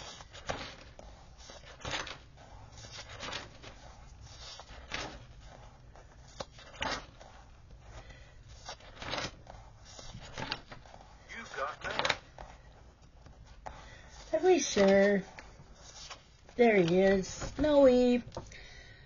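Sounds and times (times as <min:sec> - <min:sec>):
planner pages turning: 0:00.0 - 0:18.5.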